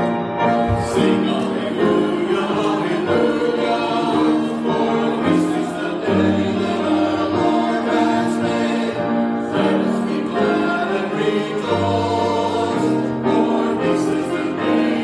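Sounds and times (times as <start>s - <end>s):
church choir singing: 0.0s - 15.0s.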